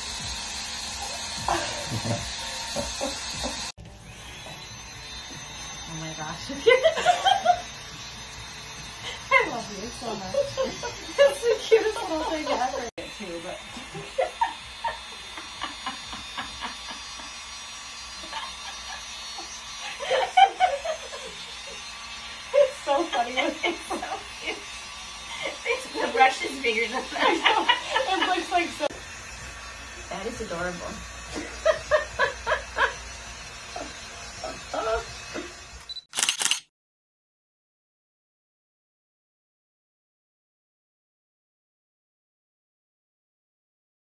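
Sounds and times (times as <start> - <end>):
hair dryer motor buzz: 0.0 - 36.6
women laughing: 1.4 - 3.7, 6.5 - 7.8, 9.0 - 12.9, 13.7 - 28.9, 31.3 - 35.7.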